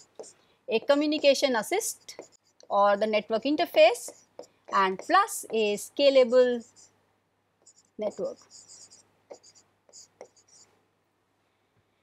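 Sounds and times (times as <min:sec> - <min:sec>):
stylus scratching on screen: 0:00.0 - 0:06.9, 0:07.6 - 0:10.7.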